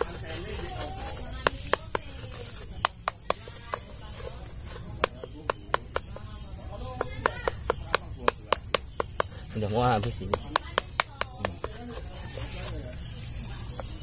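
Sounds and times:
knife scraping tree bark: 0:00.0 - 0:14.0.

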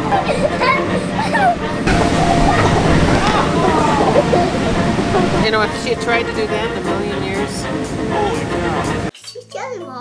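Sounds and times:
low rumble: 0:01.9 - 0:08.2.

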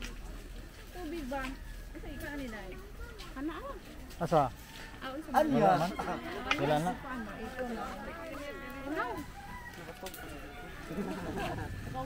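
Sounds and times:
rooster crowing: 0:05.6 - 0:11.8.

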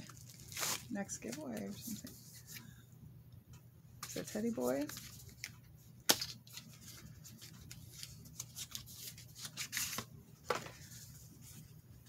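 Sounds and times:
packaging crinkling: 0:00.0 - 0:01.0
low steady hum: 0:00.0 - 0:12.0.

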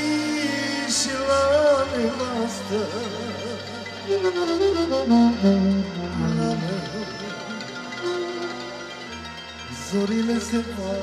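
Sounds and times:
electronic keyboard accompaniment: 0:00.0 - 0:11.0
saxophone melody: 0:02.3 - 0:10.2.

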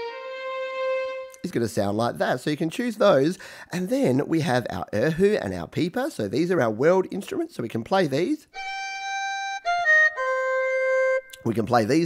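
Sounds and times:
bowed erhu notes: 0:00.0 - 0:01.4, 0:08.6 - 0:11.4.

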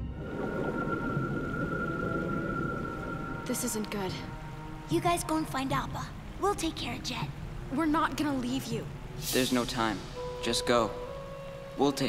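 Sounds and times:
low grainy rumble: 0:00.0 - 0:11.8.

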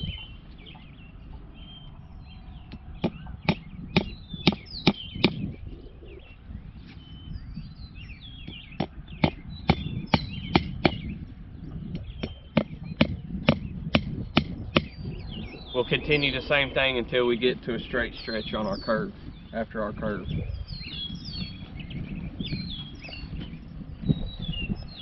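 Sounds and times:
birds chirping: 0:00.0 - 0:25.0.

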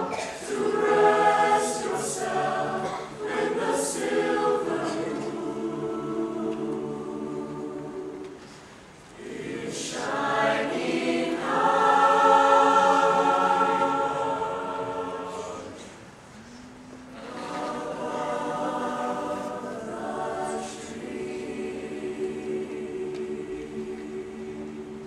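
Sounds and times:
mixed choir singing: 0:00.0 - 0:16.1, 0:17.1 - 0:25.0.

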